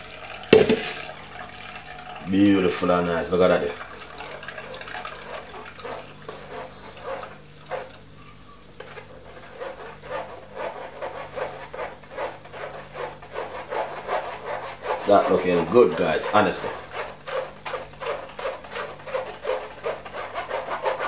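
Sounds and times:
pulp scraping against mesh strainer: 4.4s - 21.0s.

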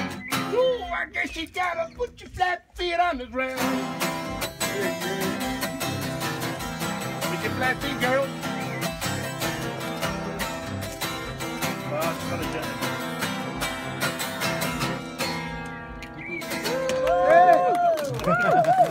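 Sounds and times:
acoustic guitars strumming: 0.0s - 16.8s
person singing: 3.2s - 10.9s
voices calling out and whooping: 16.2s - 18.9s.

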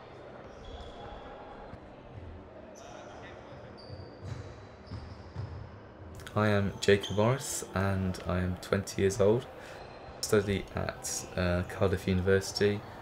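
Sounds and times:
shoe squeaks on court floor: 0.5s - 1.3s, 3.6s - 5.5s.

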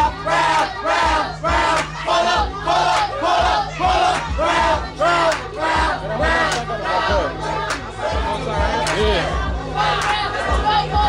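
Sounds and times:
crowd chanting and shouting: 0.0s - 11.0s.

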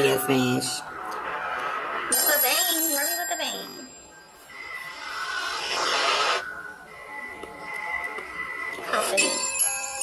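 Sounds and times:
thin steady high tone: 2.1s - 10.0s
whoosh: 4.9s - 6.5s.

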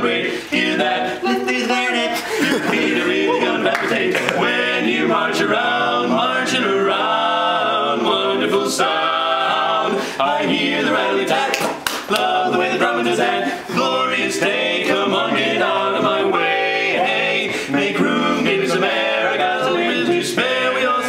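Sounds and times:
men singing a cappella harmony: 0.0s - 21.0s.

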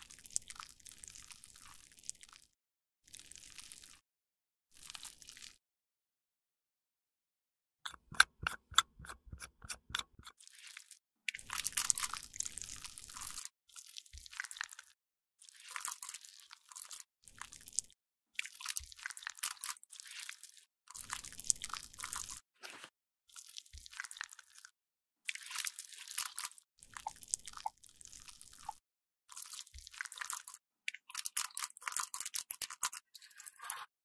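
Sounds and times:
plastic pump cap clicks: 7.9s - 10.3s.

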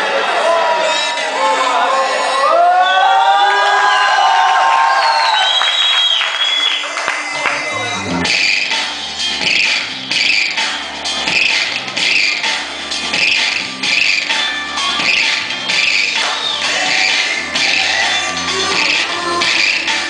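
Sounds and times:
dance music: 6.0s - 20.0s.

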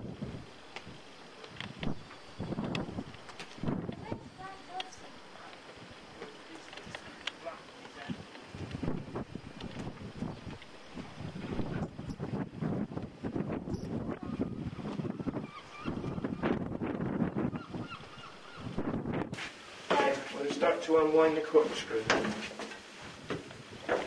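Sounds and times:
wind gusting on microphone: 0.0s - 21.3s
person speaking: 19.9s - 22.4s.

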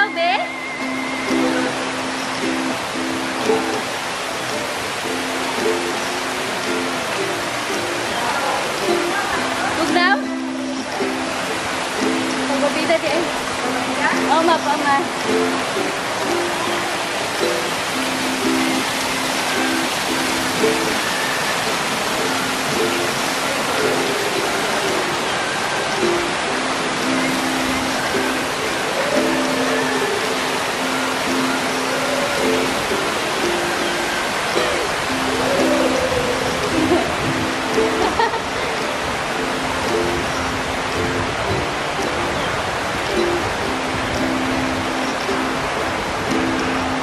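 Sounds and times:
background music melody: 0.0s - 47.0s
fountain water splashing: 0.0s - 47.0s.

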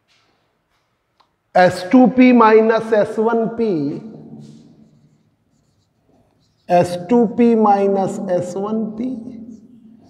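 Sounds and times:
marker writing on whiteboard: 2.9s - 10.0s.

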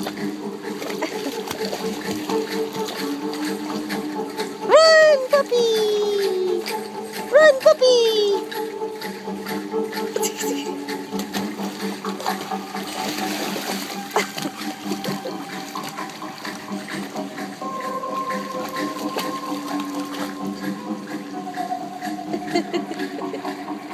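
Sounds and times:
background music held notes: 0.0s - 23.9s
water sloshing: 0.0s - 23.9s.

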